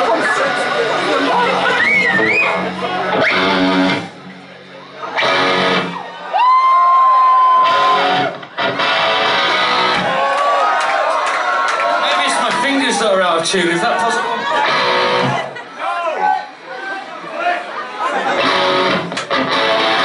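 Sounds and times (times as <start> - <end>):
crowd voices and shouts: 0.0 - 20.0
electric guitar strumming: 0.6 - 6.1, 7.6 - 10.1, 14.6 - 15.4, 18.4 - 20.0.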